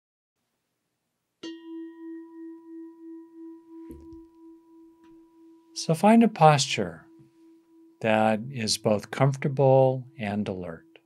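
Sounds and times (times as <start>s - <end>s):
meditation bell ringing: 1.4s - 11.0s.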